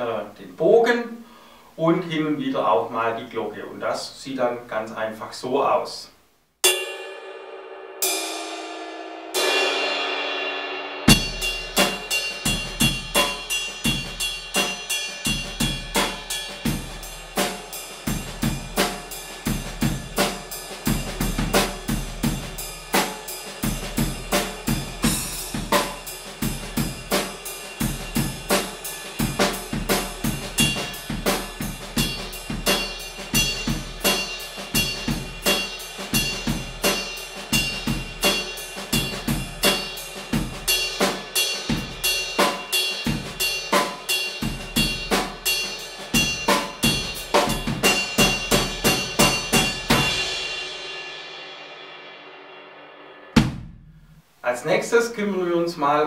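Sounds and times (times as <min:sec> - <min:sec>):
ride cymbal jazz pattern: 0:06.6 - 0:52.4
light drum kit: 0:08.0 - 0:52.3, 0:53.2 - 0:54.3.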